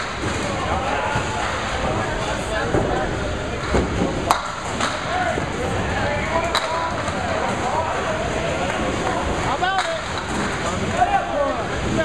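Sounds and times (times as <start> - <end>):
bowling balls clacking pins: 0.0 - 5.8, 8.5 - 11.0
hubbub of indistinct voices: 0.0 - 12.0.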